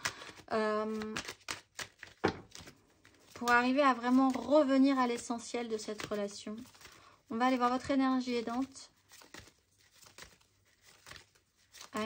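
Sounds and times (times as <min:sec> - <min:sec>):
card deck rustling and ticking: 0:00.0 - 0:12.0.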